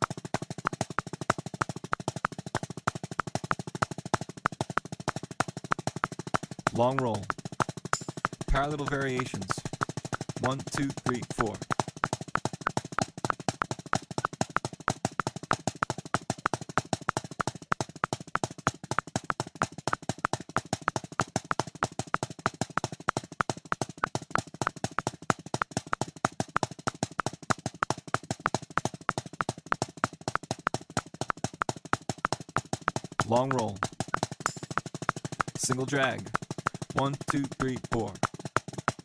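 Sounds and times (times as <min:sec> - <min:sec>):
drumsticks playing fast strokes: 0:04.5 - 0:14.7, 0:30.6 - 0:39.0.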